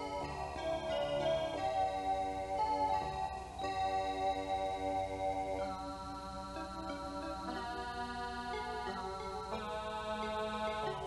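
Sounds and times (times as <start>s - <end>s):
sustained chord music: 0.0s - 11.0s.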